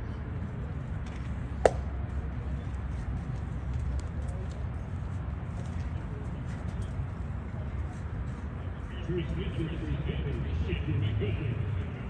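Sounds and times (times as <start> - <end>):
outdoor background noise: 0.0 - 12.0
baseball popping into leather mitt: 1.6 - 1.9.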